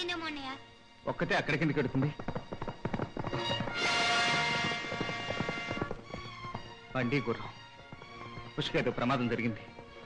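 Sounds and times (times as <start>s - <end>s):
horse hooves clip-clopping: 1.2s - 10.0s.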